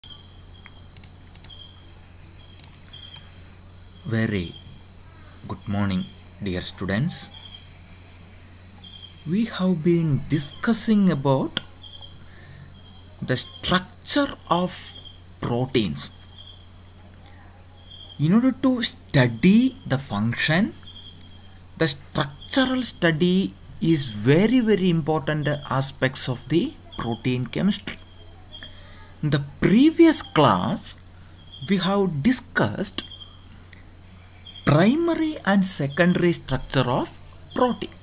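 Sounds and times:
crickets trilling: 0.0 - 38.0
faint hiss: 0.0 - 38.0
low electrical hum: 0.0 - 38.0.

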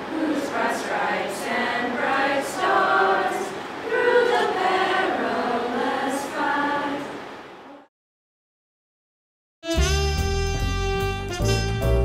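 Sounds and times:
group singing unaccompanied: 0.0 - 7.9.

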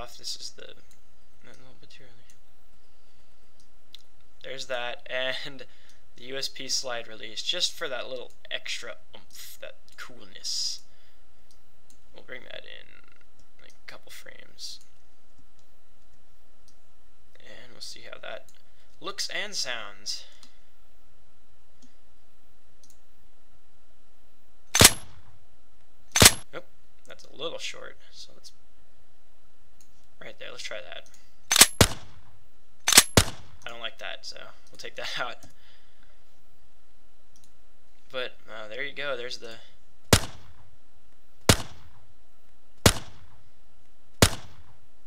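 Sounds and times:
pistol slide release: 24.8 - 25.1, 26.2 - 26.4, 31.5 - 32.0, 32.9 - 33.4
pistol gunshots: 24.8 - 25.2, 26.2 - 26.4, 31.5 - 32.2, 32.9 - 33.6, 40.1 - 40.6, 41.5 - 42.0, 42.8 - 43.4, 44.2 - 44.7.

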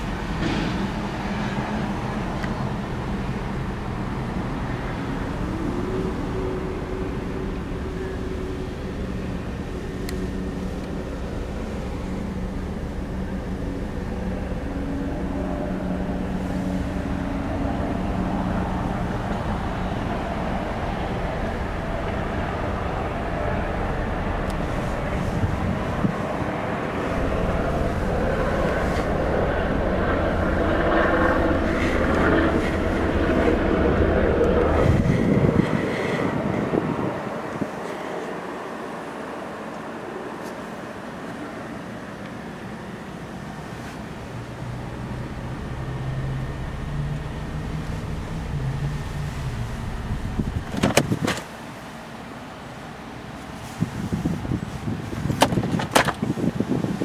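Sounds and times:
car engine idling: 1.9 - 35.1, 42.4 - 53.2.

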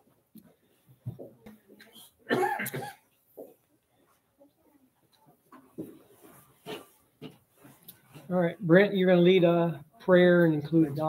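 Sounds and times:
person coughing: 2.3 - 3.0.

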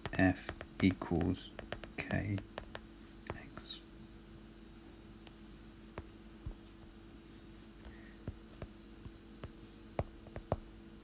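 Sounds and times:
stylus tapping tablet screen: 0.0 - 3.6, 5.9 - 7.0, 7.8 - 10.7
low steady hum: 0.0 - 11.0.

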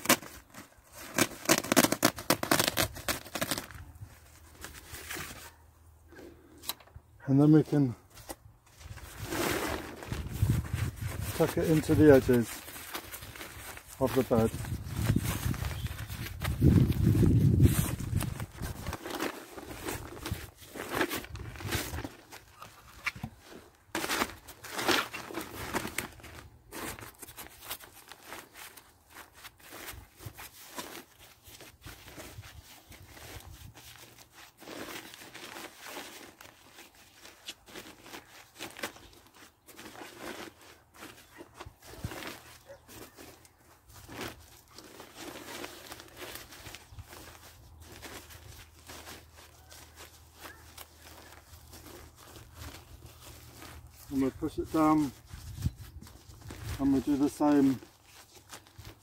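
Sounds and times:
plastic membrane rustling and crackling: 0.0 - 5.6, 6.7 - 59.0.

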